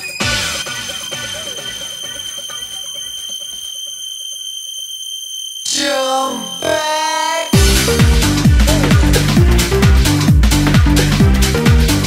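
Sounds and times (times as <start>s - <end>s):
high-pitched synth tone: 0.0s - 11.1s
kick drum and bassline: 7.6s - 12.0s.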